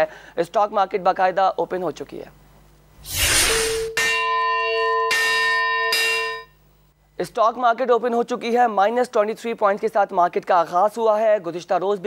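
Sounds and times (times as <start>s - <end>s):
bell ringing: 3.6s - 6.6s.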